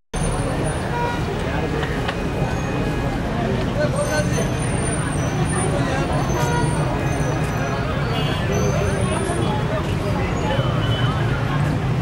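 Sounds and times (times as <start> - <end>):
road traffic: 0.1 - 12.0.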